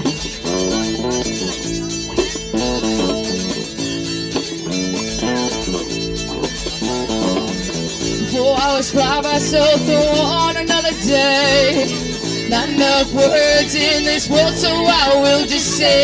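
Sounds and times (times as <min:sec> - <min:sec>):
acoustic guitar strumming: 0:00.0 - 0:16.0
electric bass guitar: 0:00.0 - 0:16.0.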